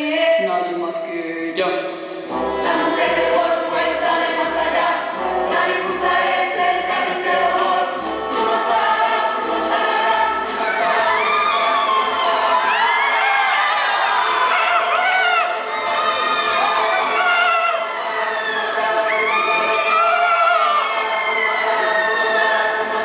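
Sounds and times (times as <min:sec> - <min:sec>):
choir singing: 0:02.3 - 0:23.0.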